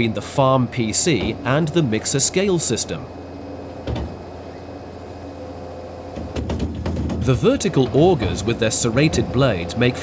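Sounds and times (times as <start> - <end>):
feeder mixer humming: 0.0 - 10.0
knock: 6.2 - 7.2.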